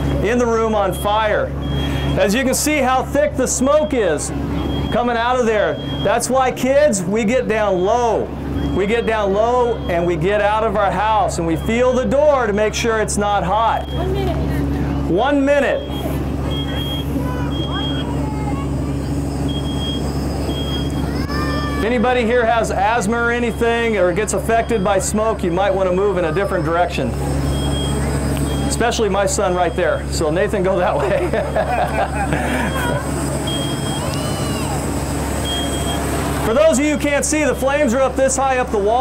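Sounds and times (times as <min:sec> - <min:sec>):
smoke alarm beeping: 0:00.0 - 0:02.2, 0:03.6 - 0:06.3, 0:07.6 - 0:10.1, 0:11.5 - 0:12.2, 0:13.7 - 0:14.2, 0:15.6 - 0:18.2, 0:19.1 - 0:21.0, 0:23.3 - 0:25.2, 0:27.4 - 0:30.2, 0:31.3 - 0:34.2, 0:35.4 - 0:38.3
low engine drone: 0:00.0 - 0:39.0
steady low rumble: 0:00.0 - 0:39.0.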